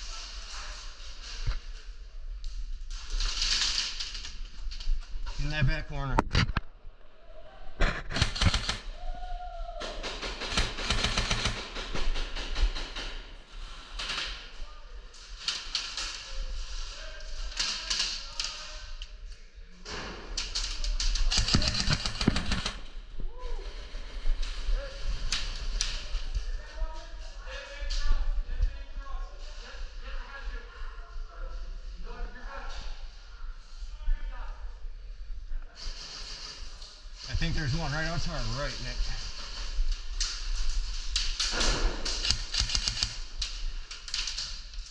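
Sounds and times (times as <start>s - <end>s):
airsoft guns firing bursts: 7.9s - 8.9s, 9.9s - 13.2s, 21.1s - 22.9s, 41.5s - 43.4s.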